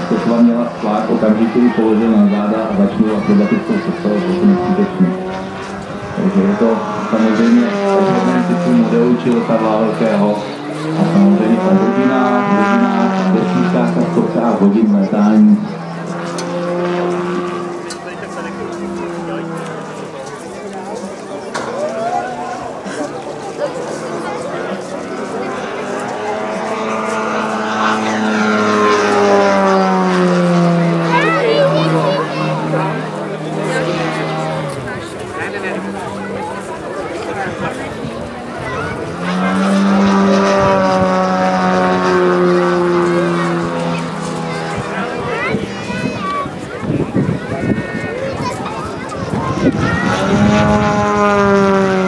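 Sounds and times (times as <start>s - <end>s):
model plane engine droning: 0.0s - 52.0s.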